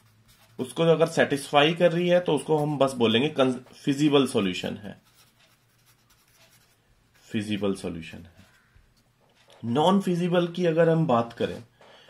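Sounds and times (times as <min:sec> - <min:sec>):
felt-tip pen scratching on paper: 0:00.0 - 0:00.8, 0:04.9 - 0:07.7.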